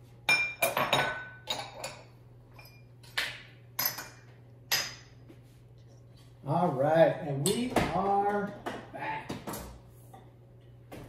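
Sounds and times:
dishes and glassware clinking: 0.3 - 3.2, 3.8 - 5.2.

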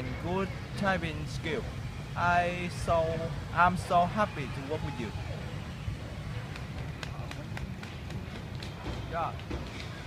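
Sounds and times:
running footsteps on paving: 6.3 - 10.0.

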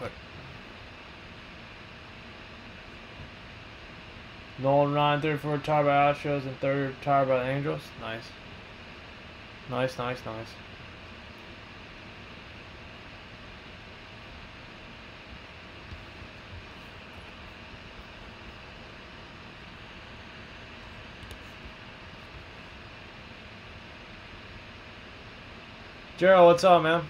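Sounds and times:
room tone hiss and hum: 0.0 - 27.0.

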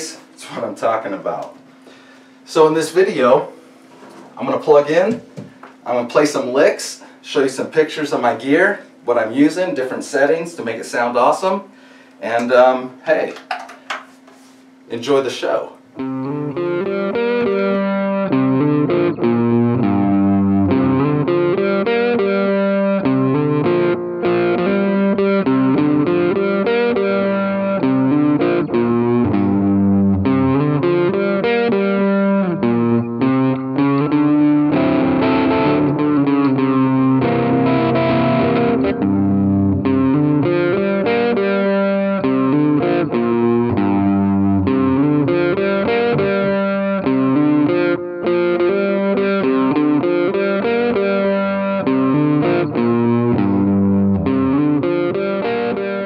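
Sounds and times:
distorted electric guitar: 15.8 - 56.0.

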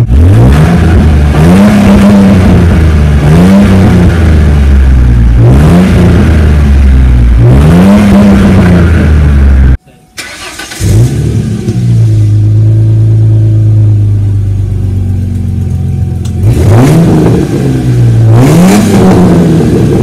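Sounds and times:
car engine revving and idling: 0.0 - 20.0.

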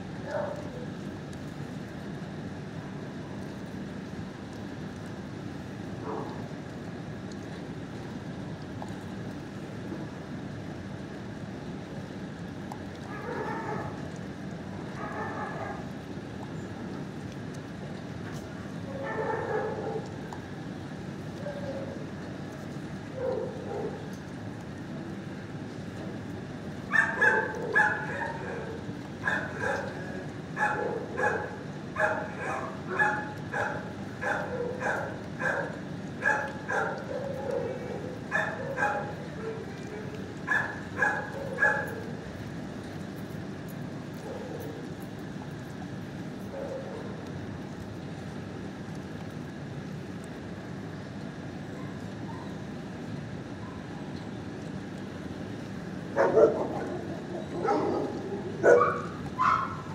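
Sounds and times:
dog barking: 0.3 - 0.7, 13.1 - 14.0, 15.0 - 15.8, 19.0 - 20.0, 23.2 - 24.0, 26.9 - 29.9, 30.6 - 39.6, 40.5 - 42.0, 56.2 - 59.9.

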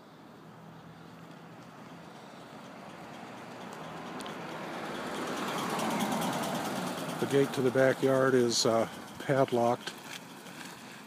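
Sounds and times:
car approaching: 0.0 - 11.0.

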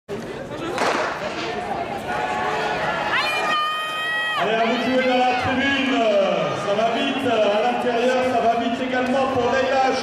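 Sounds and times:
spectators' voices: 0.1 - 10.0
starting gun shot with echo: 0.7 - 1.6.

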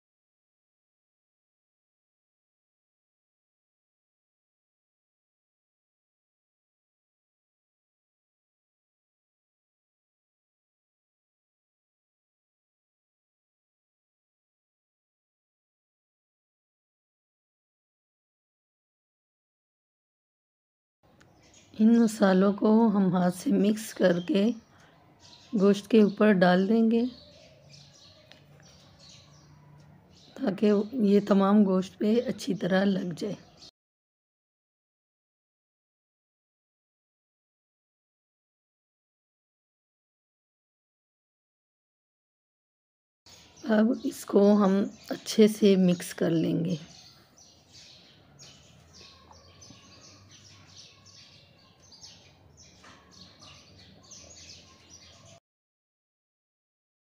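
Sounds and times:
faint high chirping: 21.1 - 33.7, 43.3 - 55.4.

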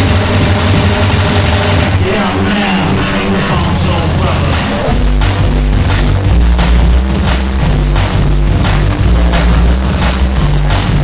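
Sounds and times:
droning low bass dj mix: 0.0 - 11.0.

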